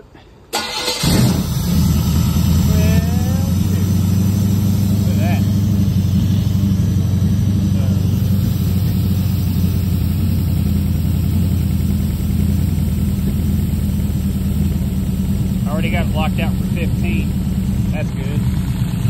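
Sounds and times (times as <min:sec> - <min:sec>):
car engine idling: 0:00.5 - 0:19.0.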